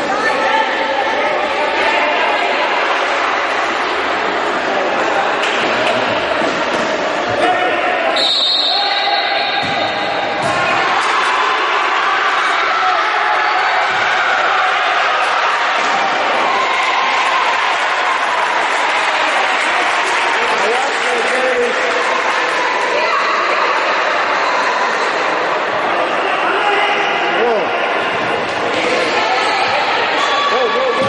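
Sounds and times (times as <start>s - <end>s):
players and spectators calling out: 0.0s - 31.0s
reverberant hall din: 0.0s - 31.0s.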